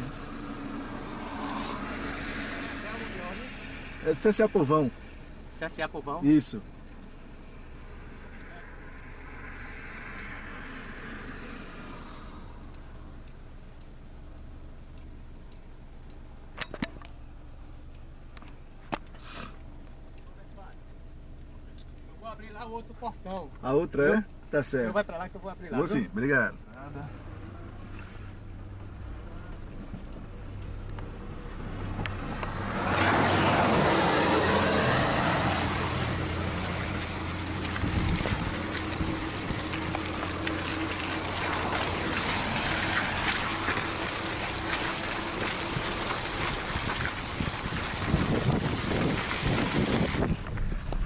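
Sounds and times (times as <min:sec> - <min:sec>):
car engine running: 0:00.0 - 0:51.0
tyre and wind noise: 0:31.0 - 0:51.0.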